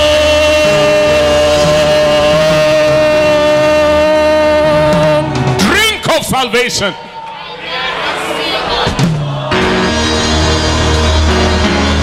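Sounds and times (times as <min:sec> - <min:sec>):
band bass notes: 0:00.0 - 0:06.4, 0:09.0 - 0:12.0.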